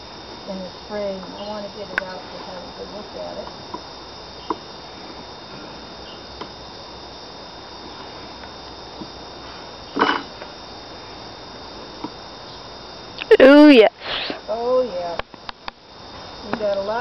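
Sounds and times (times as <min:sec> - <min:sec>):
insect hum: 0:00.0 - 0:17.0.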